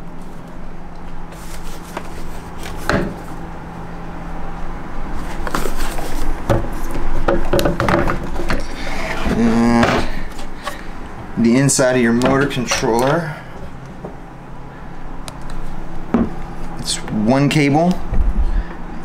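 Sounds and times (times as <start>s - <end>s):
plastic parts knocking and rattling: 7.3s - 8.6s.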